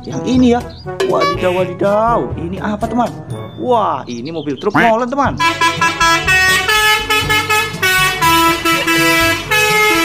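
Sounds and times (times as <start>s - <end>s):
melodic truck air horn: 1.0s - 1.8s, 5.4s - 10.0s.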